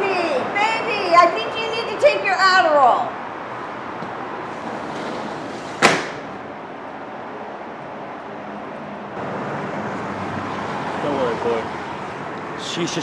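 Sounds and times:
sliding window slamming shut: 0:04.5 - 0:06.4.

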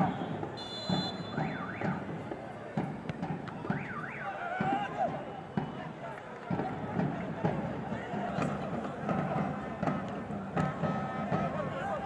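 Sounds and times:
referee whistle blast: 0:00.0 - 0:02.0
whistled calls: 0:00.0 - 0:02.0
players shouting: 0:03.6 - 0:12.0.

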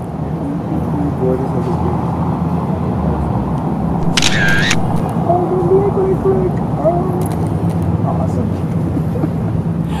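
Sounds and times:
camera motor winder whir: 0:04.0 - 0:05.0
camera shutter click: 0:04.0 - 0:05.1.

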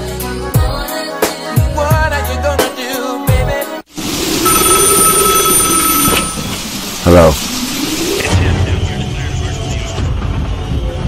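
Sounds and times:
faint high steady tones: 0:04.0 - 0:08.4
steady hiss: 0:06.4 - 0:08.4.

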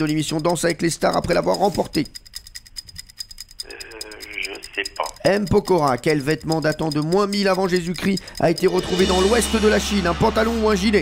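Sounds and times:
countdown timer ticking: 0:00.0 - 0:11.0
person speaking over telephone: 0:03.7 - 0:06.3.

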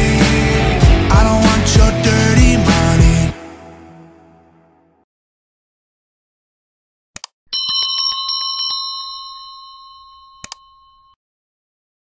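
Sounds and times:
small bell ringing: 0:07.5 - 0:11.2.

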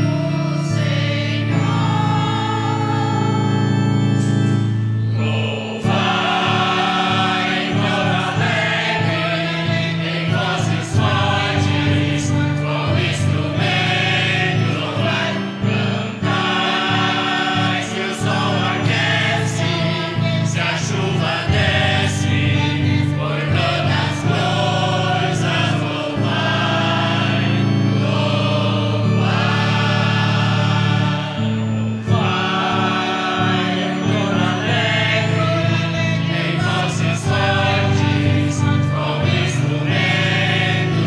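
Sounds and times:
church choir singing a hymn: 0:00.0 - 0:41.0
instrumental accompaniment: 0:00.0 - 0:41.0.

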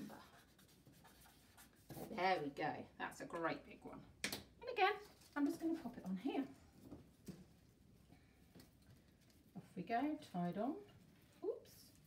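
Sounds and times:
pen scratching on paper: 0:00.0 - 0:02.2.

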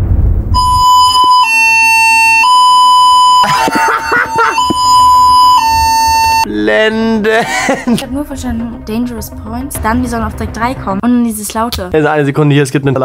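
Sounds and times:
short rushing noise: 0:00.0 - 0:00.9
two-tone alarm signal: 0:00.6 - 0:06.5.

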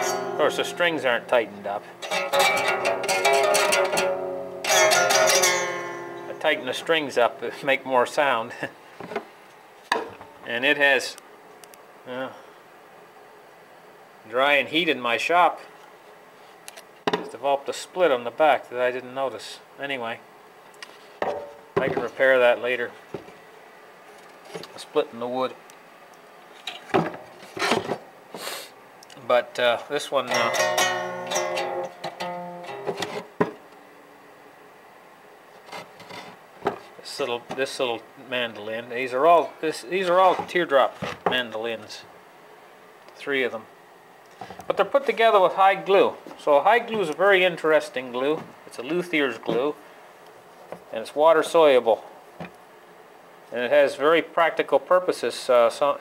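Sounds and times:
mandolin strings plucked: 0:00.0 - 0:07.8, 0:30.2 - 0:33.6
mandolin strum ringing: 0:00.0 - 0:07.9, 0:30.2 - 0:33.3
rubbing and scraping on wood: 0:35.6 - 0:37.0.

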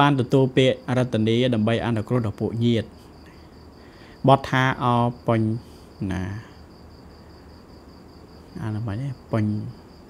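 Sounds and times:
man speaking: 0:00.0 - 0:03.0, 0:04.2 - 0:06.6, 0:08.6 - 0:09.8
insect trilling: 0:00.0 - 0:10.0.

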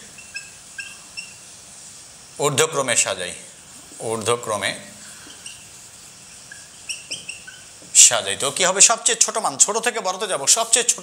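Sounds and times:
marker squeaking on whiteboard: 0:00.0 - 0:01.5, 0:05.1 - 0:08.3
faint hiss: 0:00.0 - 0:11.0.

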